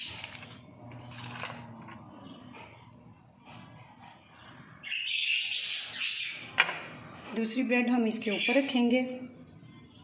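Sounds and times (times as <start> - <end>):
parrots squawking and chattering: 3.4 - 6.6.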